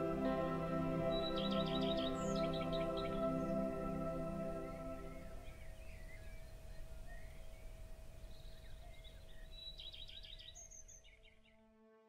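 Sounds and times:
ambient music: 0.0s - 5.7s, 11.4s - 12.0s
birds chirping: 0.0s - 11.5s.

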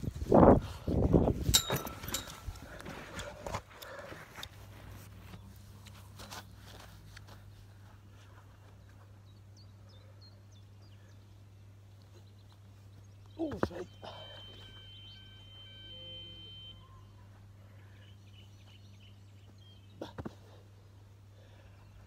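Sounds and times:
faint bird chirps: 12.0s - 20.0s
thin steady high tone: 13.4s - 17.3s.

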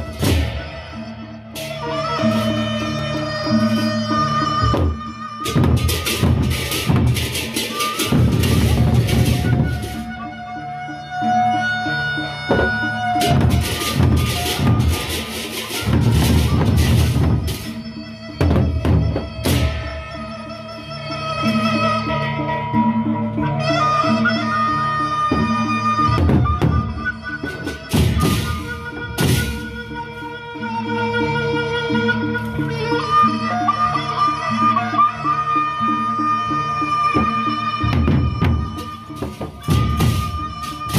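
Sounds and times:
barrel drums beaten in a driving rhythm: 0.0s - 2.0s, 4.6s - 10.2s, 12.5s - 20.2s, 25.3s - 30.0s, 37.2s - 40.9s
percussion ensemble music: 0.0s - 40.9s.

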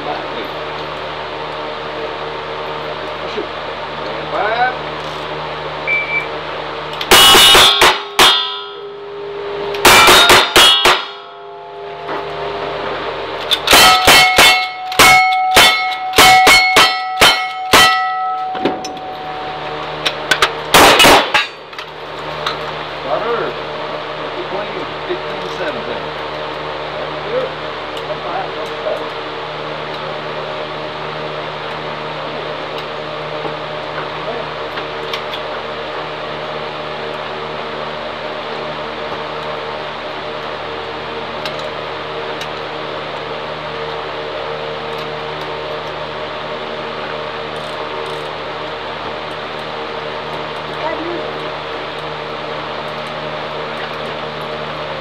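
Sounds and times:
steel targets ringing: 7.0s - 12.2s, 13.4s - 21.7s.

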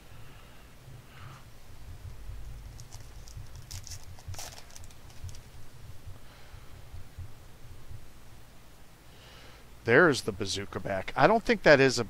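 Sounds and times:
trading cards clicking and rustling: 2.7s - 5.5s.

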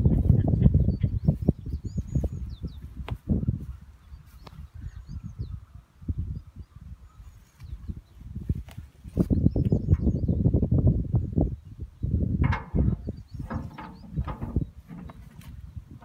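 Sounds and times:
birds chirping: 0.0s - 16.0s.

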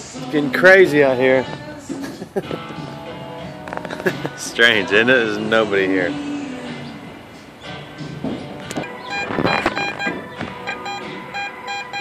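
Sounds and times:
music playing: 0.0s - 12.0s
metal detector beeping: 8.8s - 12.0s.

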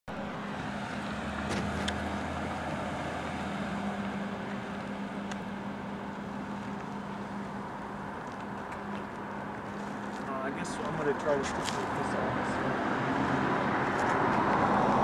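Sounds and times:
car engine hum: 0.1s - 15.0s
road noise: 0.1s - 15.0s.

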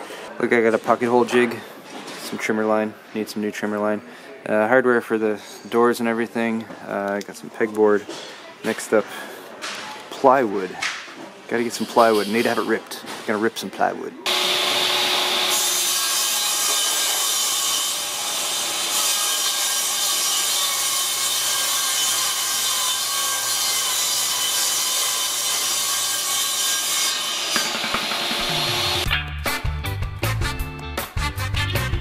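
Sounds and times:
dust collector running: 14.3s - 15.5s
panel saw cutting plywood: 14.3s - 29.1s
upbeat music: 28.4s - 32.0s.

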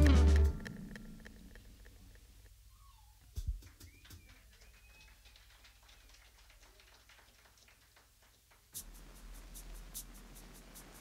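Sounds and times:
band music: 0.0s - 1.3s.

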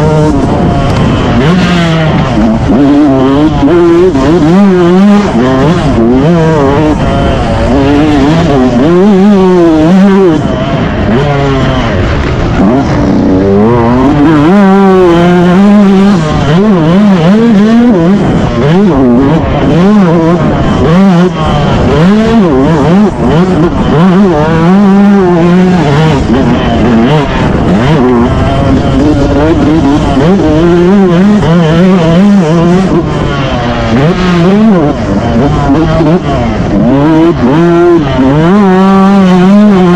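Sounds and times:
dirt bike engine revving: 0.0s - 39.9s.

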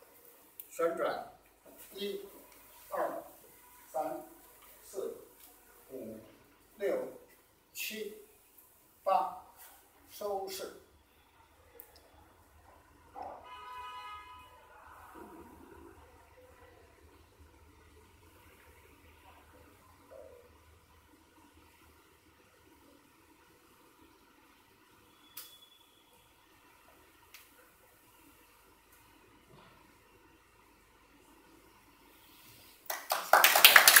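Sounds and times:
people clapping: 32.8s - 34.0s.

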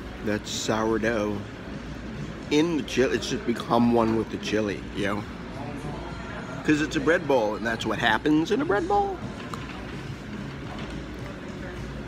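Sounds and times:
steady low hum: 0.0s - 7.2s
faint background voices: 0.4s - 12.0s.

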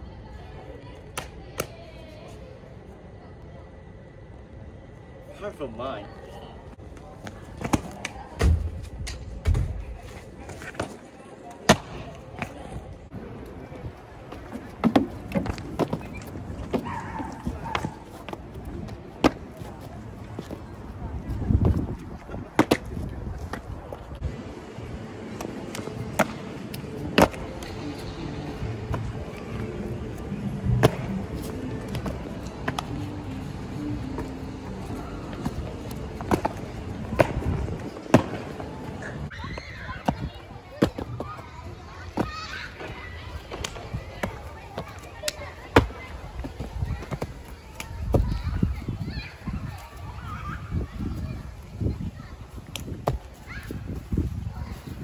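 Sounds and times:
sneakers thudding on paving: 14.2s - 20.7s, 30.8s - 33.0s, 35.3s - 38.6s, 52.6s - 54.8s.

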